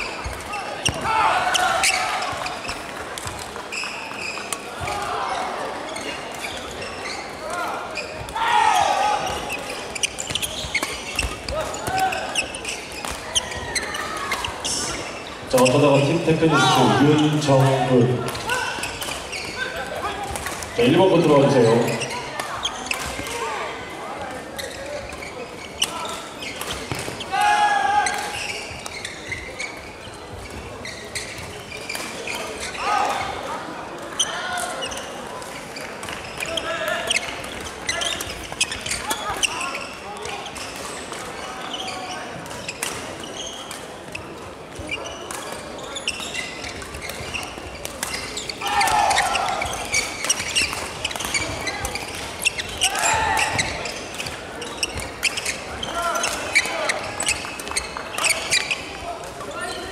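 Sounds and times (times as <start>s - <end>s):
players' voices and shouts: 0.0s - 29.7s, 32.2s - 35.5s, 44.9s - 59.9s
badminton rackets hitting shuttlecocks: 9.2s - 14.6s, 45.2s - 59.4s.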